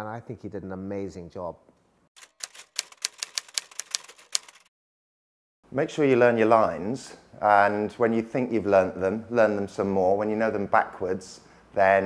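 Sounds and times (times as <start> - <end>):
typewriter key clacks: 2.2 - 4.7.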